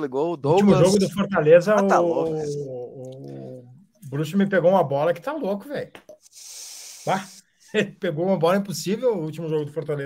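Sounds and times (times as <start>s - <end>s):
person hissing through teeth: 6.2s - 7.6s.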